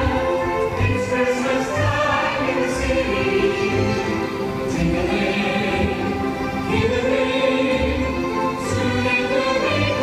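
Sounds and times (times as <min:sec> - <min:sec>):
choir singing sustained notes: 0:00.0 - 0:10.0.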